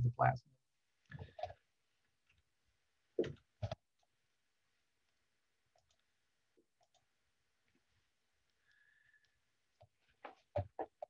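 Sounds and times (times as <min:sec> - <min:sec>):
computer mouse clicks: 0:05.8 - 0:06.1, 0:06.8 - 0:07.1.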